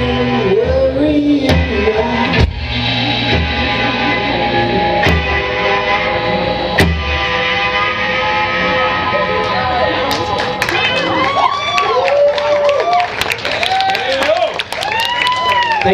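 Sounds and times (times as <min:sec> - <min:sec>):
live rock band: 0:00.0 - 0:15.9.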